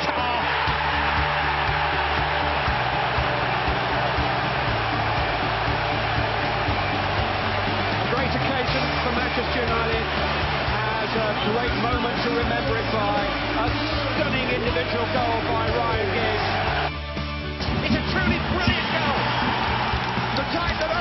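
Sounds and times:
background music: 0.0s - 21.0s
stadium crowd cheering: 0.0s - 21.0s.

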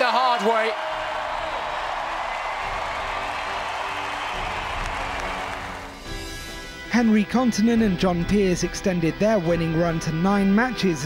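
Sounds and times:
crowd cheering and applauding: 0.0s - 6.5s
background music: 0.0s - 11.0s.

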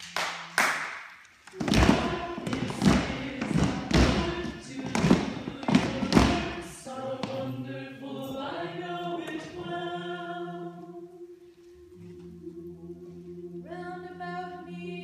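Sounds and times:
heavy thumps: 1.5s - 7.4s
group singing a cappella: 1.5s - 15.0s.

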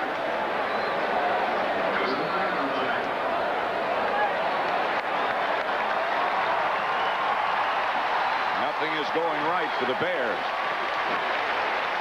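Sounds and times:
crowd cheering and clapping: 3.0s - 12.0s.

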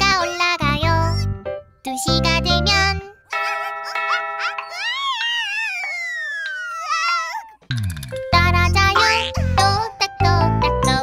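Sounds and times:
cartoon character wailing: 3.3s - 7.7s.

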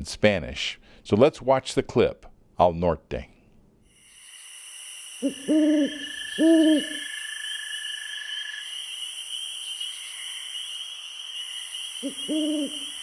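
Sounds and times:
night insects chorus: 3.9s - 13.0s
owl hooting: 5.2s - 13.0s.

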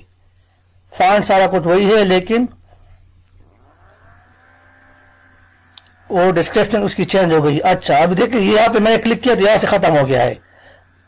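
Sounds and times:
faint steady low hum: 0.0s - 11.0s
man's voice: 6.1s - 10.4s.

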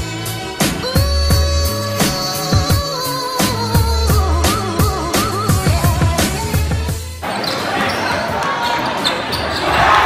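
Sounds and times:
crowd noise: 6.9s - 10.0s.

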